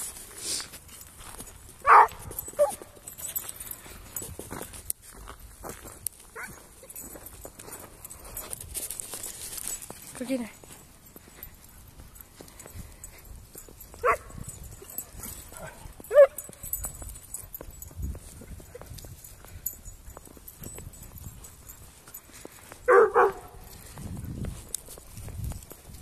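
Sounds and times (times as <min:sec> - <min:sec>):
dogs barking: 0:01.8 - 0:02.9, 0:14.0 - 0:16.7, 0:22.9 - 0:23.7.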